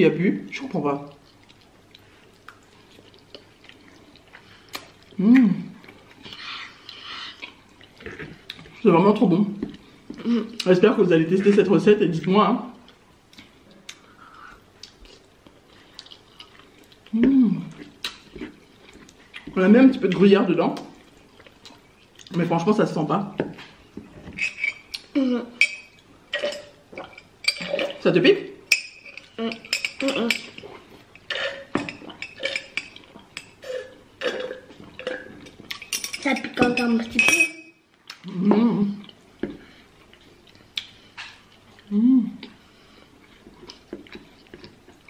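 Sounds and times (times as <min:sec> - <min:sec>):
chewing: 0:01.1 - 0:05.2, 0:12.9 - 0:19.6, 0:38.0 - 0:45.0
chewing spaghetti: 0:01.1 - 0:05.2
wet mouth clicks: 0:18.0 - 0:18.3
hummed mmh of enjoyment: 0:25.1 - 0:25.6, 0:41.9 - 0:42.6.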